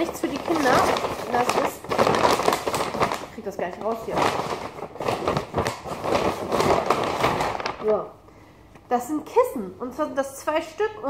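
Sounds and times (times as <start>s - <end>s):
paper bag rustling and crackling: 0.0s - 8.2s.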